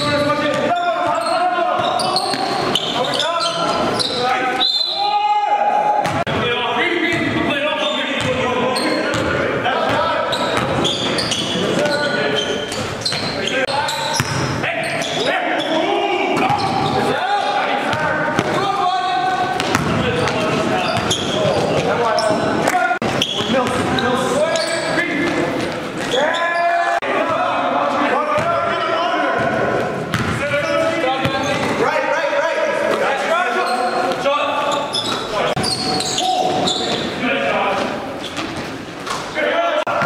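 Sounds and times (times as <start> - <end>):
players shouting and talking: 0.0 - 40.0
ball bouncing on hardwood court: 6.0 - 6.4, 14.1 - 14.6, 17.9 - 18.6, 19.5 - 22.0, 30.1 - 30.4.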